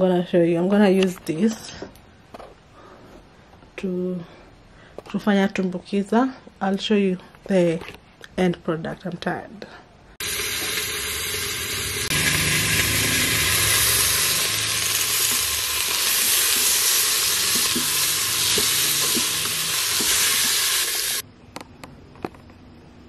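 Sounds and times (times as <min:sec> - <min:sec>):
vegetables sizzling in a pot: 0:10.2 - 0:21.2.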